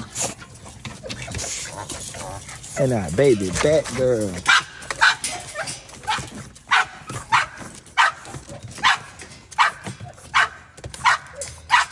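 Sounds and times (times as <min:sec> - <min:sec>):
dog barking high-pitched: 0:04.5 - 0:11.9.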